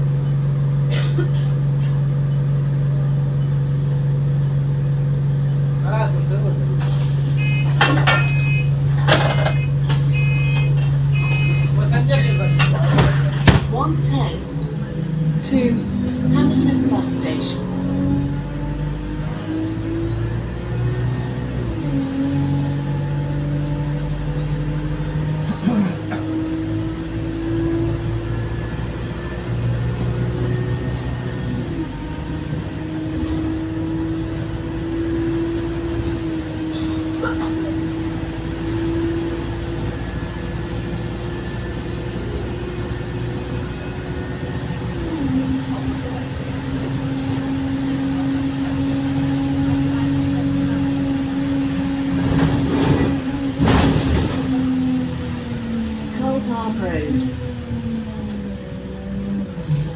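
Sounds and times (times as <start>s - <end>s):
bus engine while driving: 0.0s - 59.9s.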